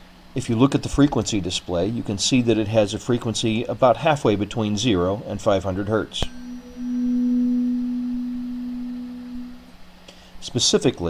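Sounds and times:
tuning fork ringing: 6.2s - 9.7s.

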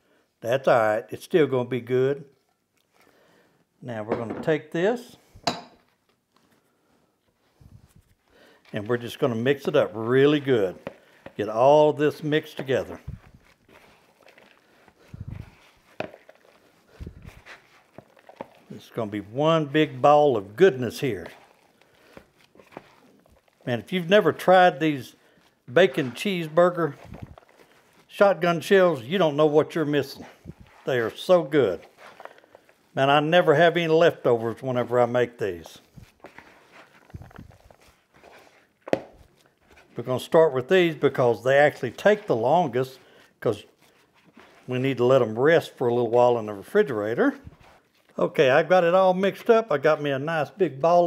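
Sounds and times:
hands squishing meat: 8.4s - 48.2s.

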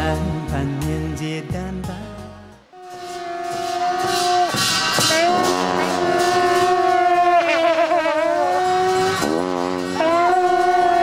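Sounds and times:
horns droning: 2.7s - 11.0s.

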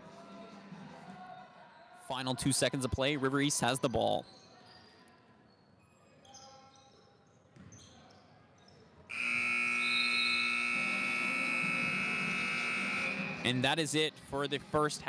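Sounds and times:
scoreboard buzzer blast: 9.1s - 13.5s.

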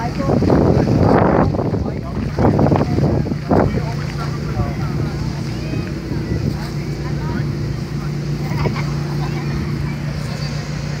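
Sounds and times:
low motor hum: 0.0s - 11.0s
people talking: 0.0s - 11.0s.

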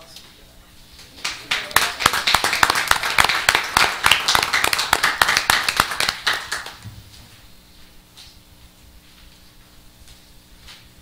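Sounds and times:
people applauding: 1.1s - 6.8s.

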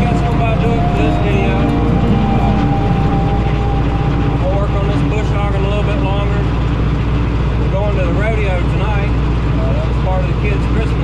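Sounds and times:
steady whine: 0.0s - 8.3s.

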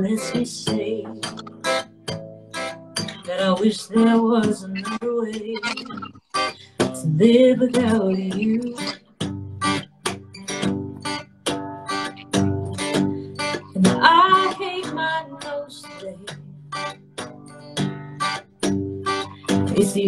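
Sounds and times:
woman singing: 0.0s - 1.3s, 3.0s - 9.1s, 13.4s - 16.6s, 19.2s - 20.0s
acoustic guitar strumming: 0.0s - 20.0s.

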